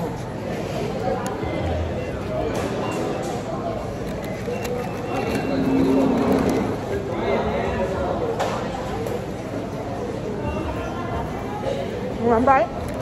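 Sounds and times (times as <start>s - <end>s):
indoor crowd chatter: 0.0s - 13.0s.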